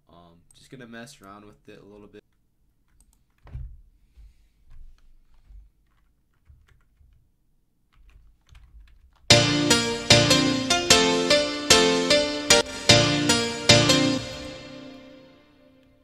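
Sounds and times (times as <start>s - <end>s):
keyboard and mouse clicks: 2.9s - 3.7s, 7.9s - 9.3s
synth chord progression: 9.3s - 15.7s.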